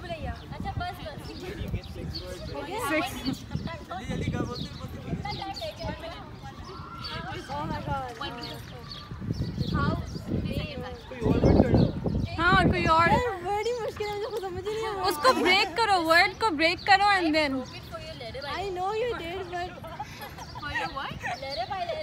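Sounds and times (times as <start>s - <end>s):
group of people talking: 0.0s - 22.0s.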